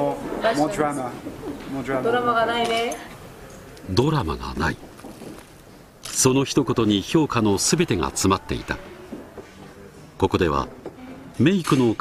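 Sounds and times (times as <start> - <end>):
man speaking: 3.9 - 4.8.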